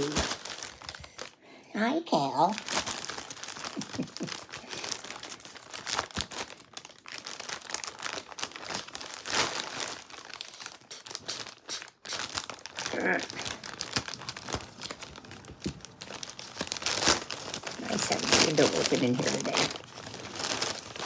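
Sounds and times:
packaging crinkling and rustling: 0.0s - 1.4s, 2.4s - 21.0s.

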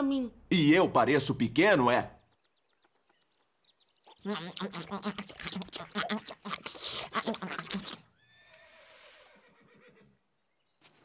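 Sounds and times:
horse whinnying: 8.1s - 10.2s.

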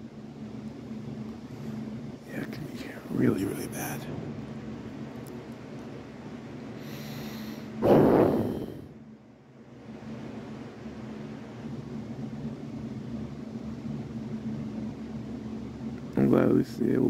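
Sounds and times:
low background hum: 0.0s - 17.0s
loud breath out: 6.8s - 8.9s.

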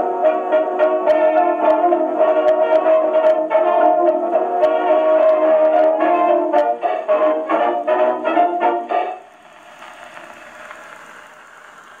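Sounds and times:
record surface hiss: 0.0s - 12.0s.

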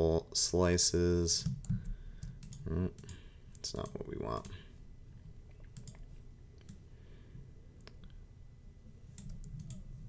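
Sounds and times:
low steady hum: 0.0s - 10.0s
computer mouse and keyboard clicks: 1.4s - 4.6s, 5.5s - 6.8s, 9.1s - 10.0s.

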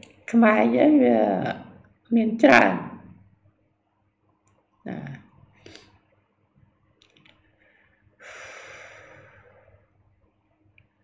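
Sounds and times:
man breathing: 7.6s - 9.8s.

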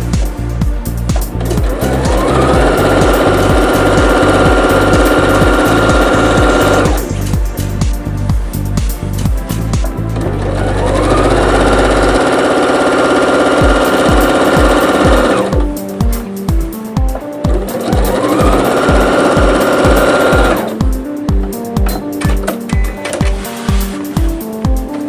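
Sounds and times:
sewing machine stitching: 1.3s - 7.2s, 10.1s - 15.7s, 17.5s - 20.8s.

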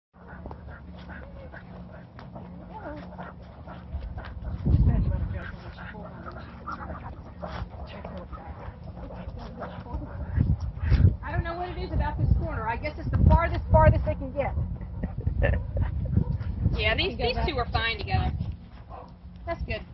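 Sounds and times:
indistinct voices: 0.2s - 14.5s
wind rumble on microphone: 0.2s - 19.9s
dogs whining: 5.4s - 11.0s.

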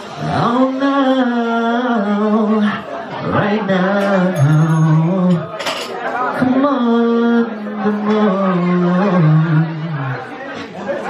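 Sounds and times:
man singing into microphone: 0.0s - 10.4s.

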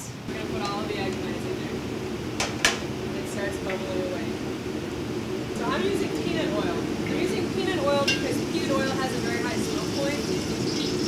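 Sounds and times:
person talking: 0.0s - 1.8s, 5.6s - 10.6s
eggplant sizzling in hot oil: 5.3s - 11.0s.

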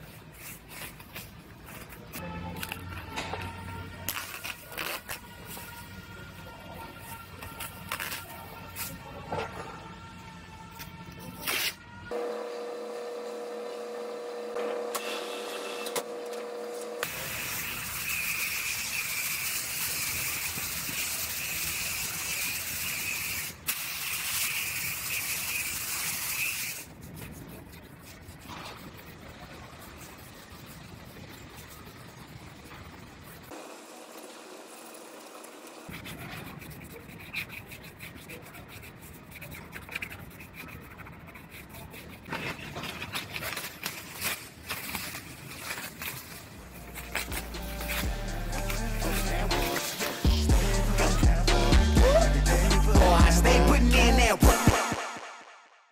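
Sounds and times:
abrasive pad scuffing paint: 0.0s - 5.8s, 13.1s - 33.6s, 35.9s - 51.2s
steady hum: 12.1s - 17.6s.

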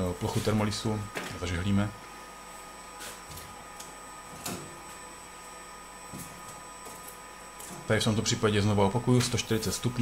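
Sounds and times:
electrical hum and machine whine: 0.0s - 10.0s.

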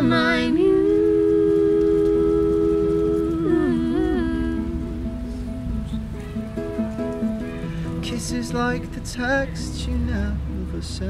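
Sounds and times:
man and woman singing in harmony: 0.0s - 5.5s
acoustic guitar: 0.0s - 11.0s.

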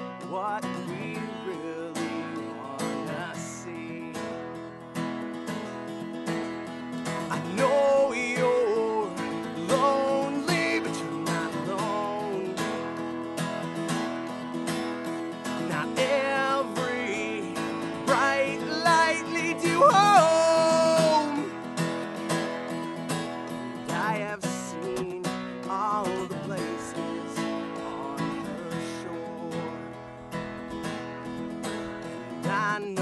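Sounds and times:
man singing folk song: 0.0s - 33.0s
strummed acoustic guitar: 0.0s - 33.0s.

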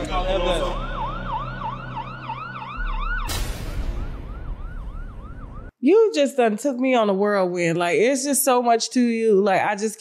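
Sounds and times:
siren yelping: 0.0s - 5.7s
sudden burst of noise: 0.0s - 5.7s.

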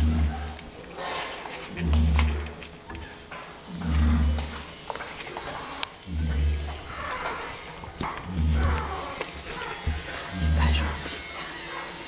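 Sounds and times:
dog snoring breathing: 1.6s - 12.0s.

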